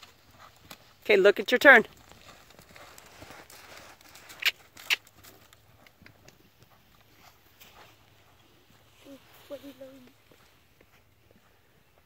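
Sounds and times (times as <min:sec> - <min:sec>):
hoofbeats on sand: 0:00.0 - 0:01.1, 0:01.8 - 0:12.0.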